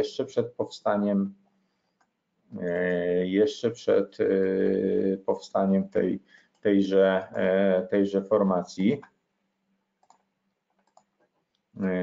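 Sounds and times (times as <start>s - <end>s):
computer mouse clicks: 10.0s - 11.7s.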